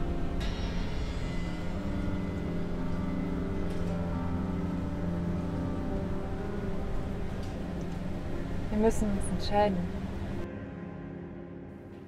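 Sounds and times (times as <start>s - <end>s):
steady low rumble: 0.0s - 10.5s
slow sustained music chords: 0.0s - 12.0s.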